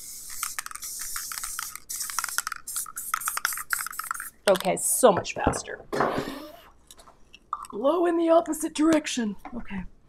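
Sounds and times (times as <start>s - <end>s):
aerosol can spraying in spurts: 0.0s - 4.7s.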